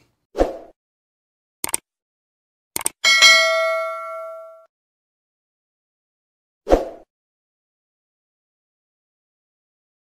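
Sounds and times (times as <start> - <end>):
notification bell ding: 3.0 - 4.7.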